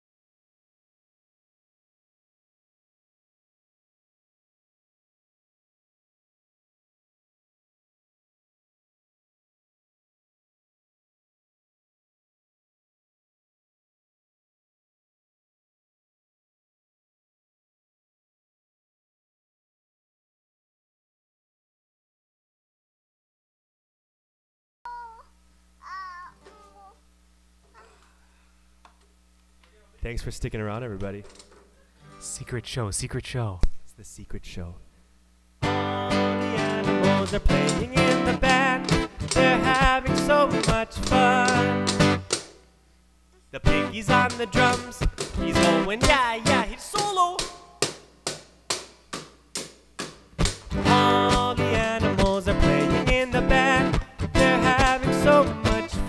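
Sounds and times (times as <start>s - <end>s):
toddler squealing: 24.9s - 27.0s
strummed acoustic guitar: 35.6s - 42.5s, 43.6s - 48.0s, 49.6s - 56.0s.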